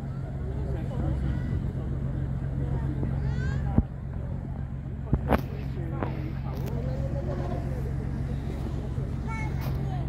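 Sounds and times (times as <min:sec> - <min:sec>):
boat engine idling: 0:00.0 - 0:10.0
faint chatter of voices: 0:00.0 - 0:10.0.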